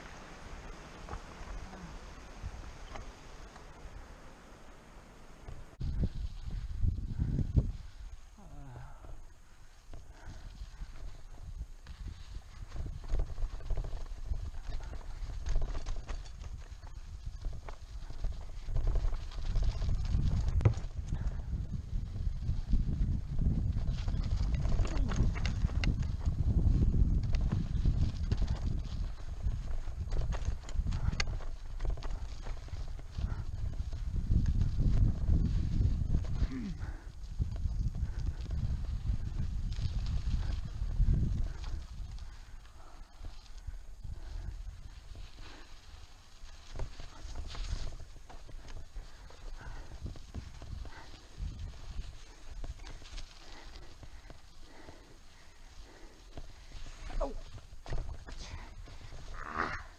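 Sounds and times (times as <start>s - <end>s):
bike tyres grinding on dirt: 0.0s - 8.2s, 9.3s - 59.9s
wind on microphone: 5.5s - 59.9s
bike knocking and rattling: 9.9s - 55.5s.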